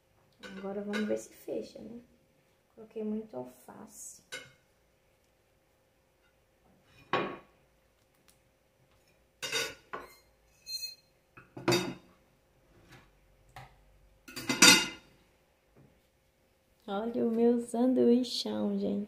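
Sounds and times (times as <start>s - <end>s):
ceramic plate clattering on counter: 14.3s - 15.1s.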